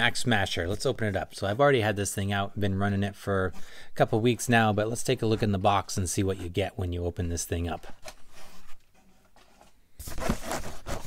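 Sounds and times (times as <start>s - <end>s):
cardboard box scraping on wood: 8.2s - 11.0s.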